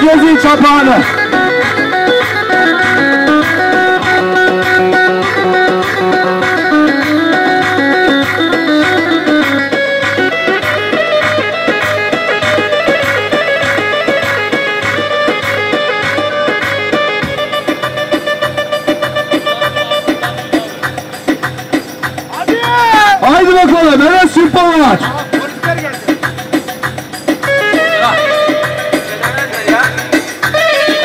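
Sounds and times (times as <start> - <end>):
electronic keyboard music: 0.0 - 31.0.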